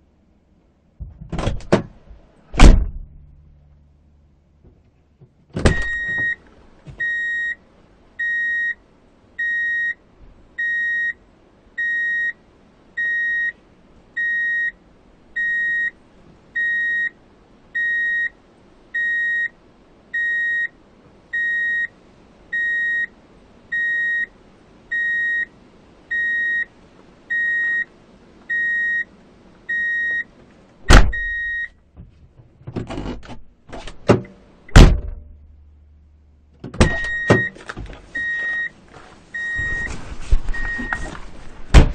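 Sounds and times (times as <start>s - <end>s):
loud clunk: 2.6s - 3.3s, 30.9s - 31.3s, 32.7s - 35.4s, 41.7s - 41.9s
reverse warning beeper: 31.0s - 31.8s, 36.9s - 37.6s, 38.2s - 38.8s, 39.4s - 39.9s.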